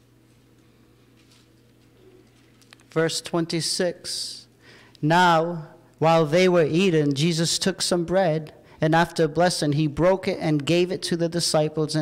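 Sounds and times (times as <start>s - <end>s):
low electrical hum: 0.0s - 12.0s
man speaking: 2.9s - 12.0s.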